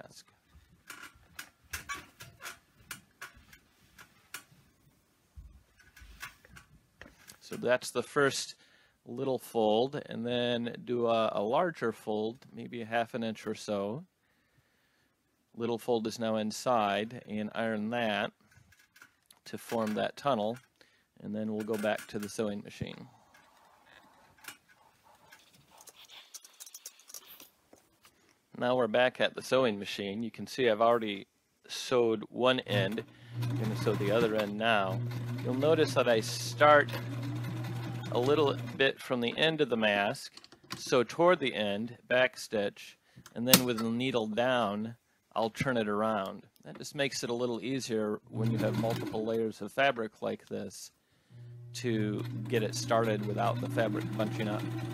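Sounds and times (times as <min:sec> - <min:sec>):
iron sliding over fabric: 0:32.7 - 0:38.8.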